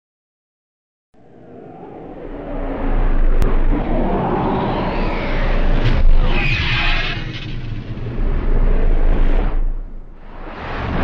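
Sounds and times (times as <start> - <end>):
deep rumbling: 1.2 - 11.0.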